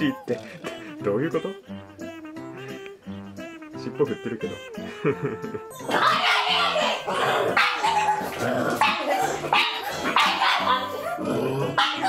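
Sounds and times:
dog barking: 5.9s - 12.0s.

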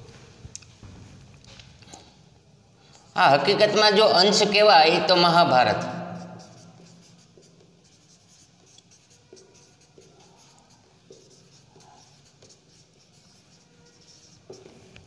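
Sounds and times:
marker squeaking on whiteboard: 5.8s - 15.0s.

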